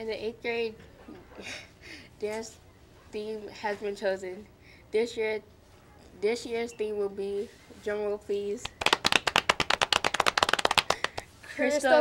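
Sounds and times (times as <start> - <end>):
people clapping: 8.6 - 11.3.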